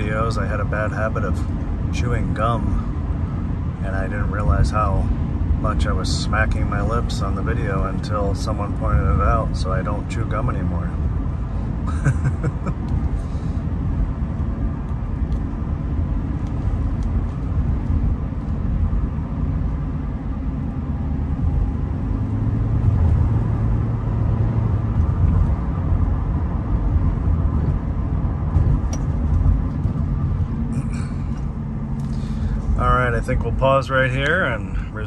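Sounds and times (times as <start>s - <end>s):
car engine low rumble: 0.0s - 35.0s
tyres on road: 0.0s - 35.0s.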